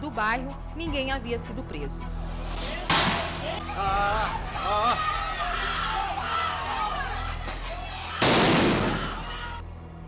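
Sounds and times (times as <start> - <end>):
loud blast: 8.2 - 9.2.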